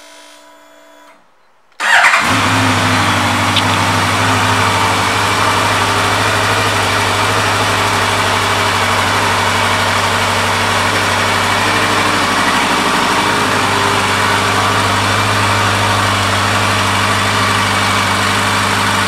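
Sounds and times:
motorcycle engine idling: 1.8s - 19.0s.

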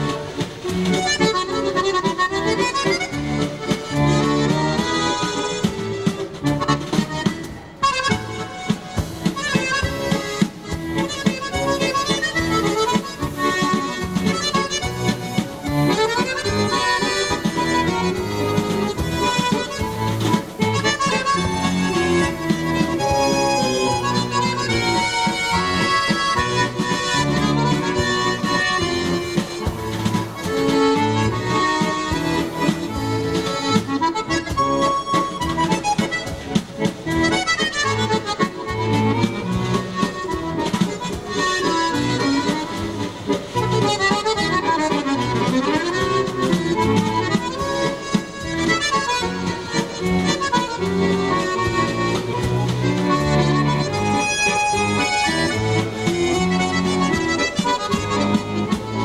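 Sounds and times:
accordion playing a waltz: 0.0s - 59.0s.

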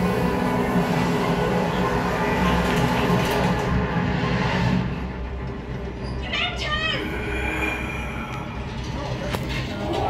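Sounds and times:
train rumbling: 0.0s - 10.0s.

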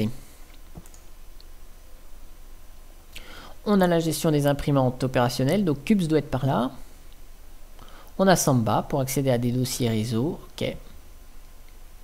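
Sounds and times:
faint steady hum: 0.0s - 12.0s
computer mouse click: 0.5s - 1.5s.

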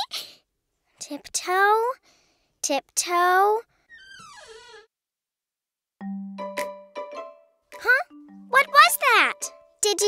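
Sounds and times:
cartoon door creaking open: 3.8s - 4.9s.

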